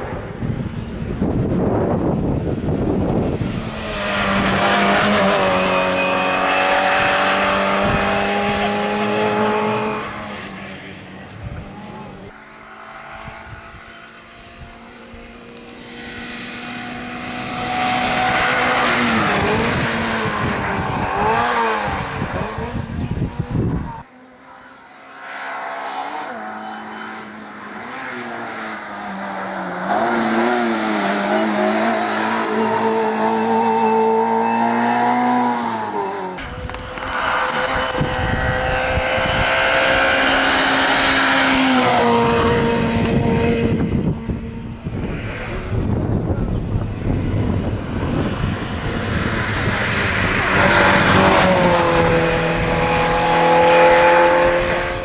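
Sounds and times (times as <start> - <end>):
race car engine revving past: 0.0 - 55.0.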